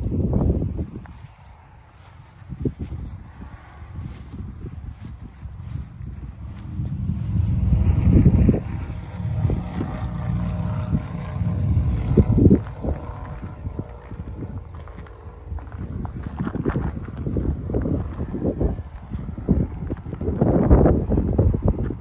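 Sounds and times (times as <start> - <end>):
footsteps on gravel: 0.0 - 22.0
wind buffeting microphone: 0.0 - 22.0.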